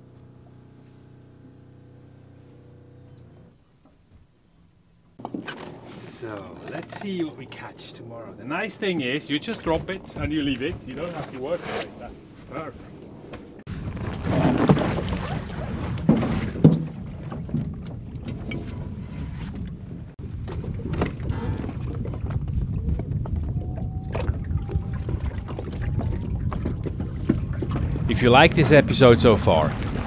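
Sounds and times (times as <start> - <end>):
motor boat rumble: 0.0 - 30.0
wind on microphone: 12.8 - 30.0.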